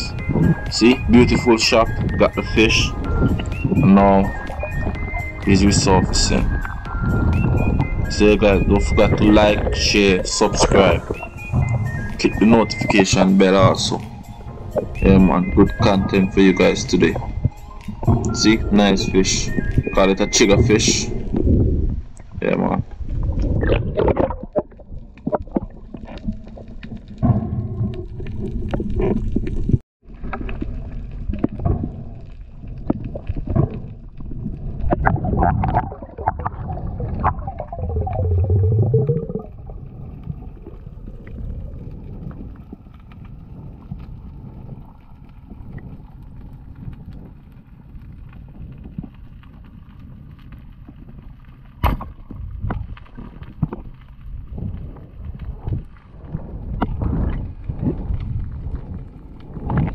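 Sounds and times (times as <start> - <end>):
gurgling water rush: 0.0 - 32.2, 32.8 - 46.8
underwater hum: 0.0 - 59.9.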